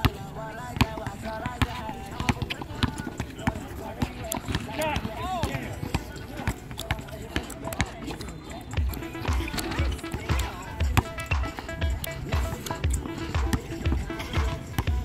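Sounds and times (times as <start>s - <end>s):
background music with singing: 0.0s - 15.0s.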